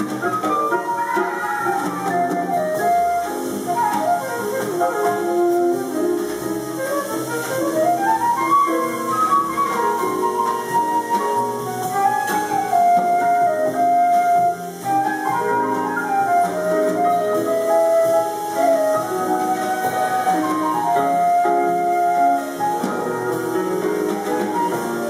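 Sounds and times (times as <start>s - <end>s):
flute melody: 0.0s - 25.0s.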